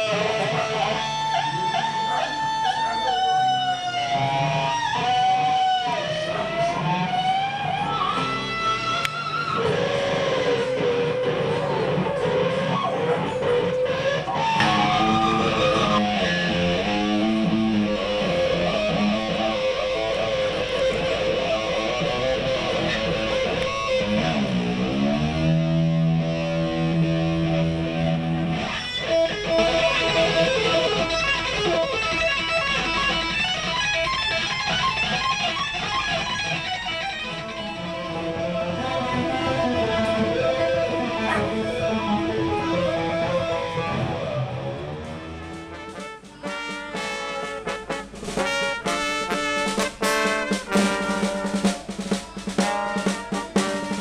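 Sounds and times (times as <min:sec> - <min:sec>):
electric guitar solo: 0:00.0 - 0:54.0.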